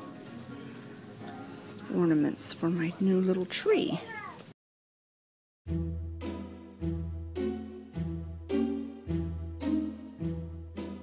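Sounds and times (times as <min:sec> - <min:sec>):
instrumental background music: 0:00.0 - 0:02.9, 0:05.7 - 0:11.0
woman speaking: 0:01.9 - 0:04.1.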